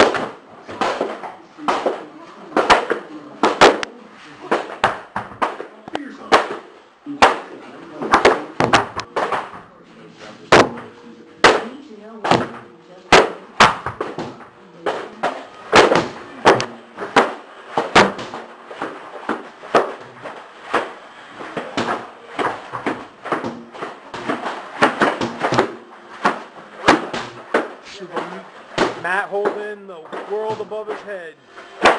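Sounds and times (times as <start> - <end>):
sharp hits and smacks: 10.5 - 31.2.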